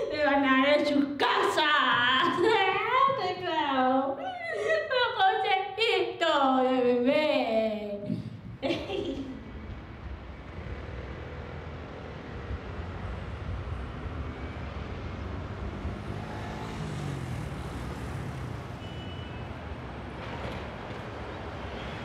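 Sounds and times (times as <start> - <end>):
traffic rumble: 0.0 - 22.0
vehicle passing by: 9.4 - 18.8.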